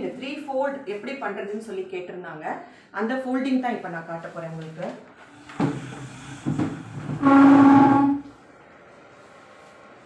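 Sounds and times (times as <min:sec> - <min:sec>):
horn steady note: 0:07.2 - 0:08.3.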